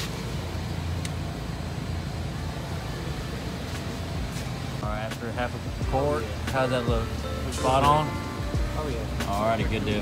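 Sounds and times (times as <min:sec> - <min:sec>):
low mechanical rumble: 0:00.0 - 0:10.0.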